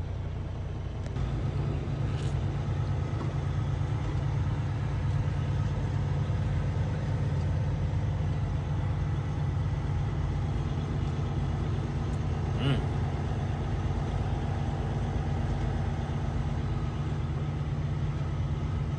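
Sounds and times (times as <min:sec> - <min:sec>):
diesel truck engine drone: 0:00.0 - 0:18.9.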